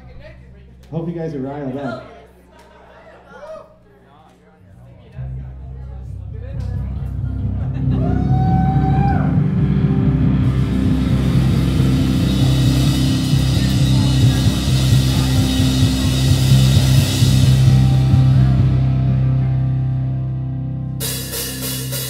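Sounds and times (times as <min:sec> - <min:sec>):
low guitar and bass notes: 0:05.1 - 0:22.0
cymbal wash: 0:08.2 - 0:22.0.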